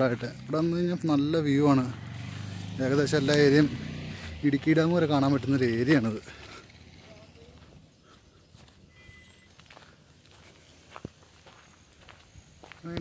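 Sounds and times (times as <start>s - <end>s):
footsteps on dirt path: 0.0s - 13.0s.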